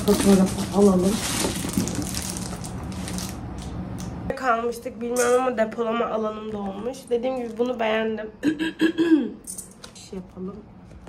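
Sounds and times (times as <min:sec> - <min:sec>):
low even hum: 0:00.0 - 0:11.0.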